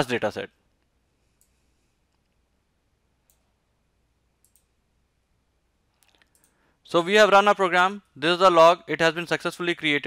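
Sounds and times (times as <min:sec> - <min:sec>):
computer mouse clicks: 0:04.4 - 0:04.7, 0:06.0 - 0:06.6.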